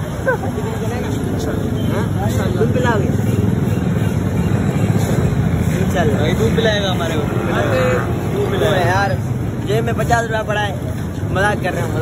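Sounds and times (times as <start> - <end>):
motorbike and car engines: 0.0 - 12.0
people talking: 0.0 - 12.0.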